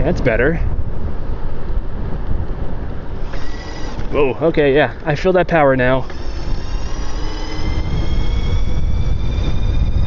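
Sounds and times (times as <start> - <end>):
wind buffeting microphone: 0.0 - 10.0
electric motor whine: 3.0 - 10.0.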